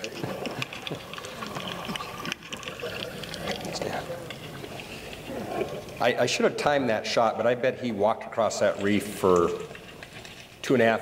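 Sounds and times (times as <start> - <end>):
crackling and bubbling water: 0.0 - 11.0.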